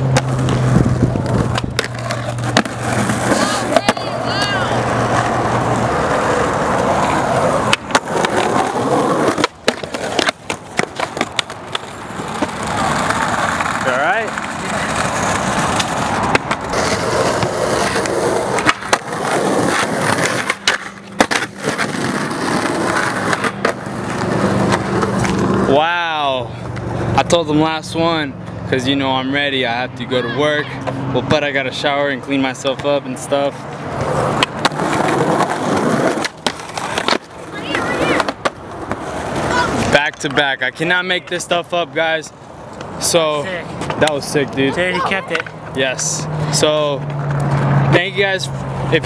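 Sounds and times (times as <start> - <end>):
skateboard clacking on ground: 0.0 - 25.6, 33.6 - 41.4, 42.6 - 45.8
skateboard wheels rolling on asphalt: 0.0 - 49.0.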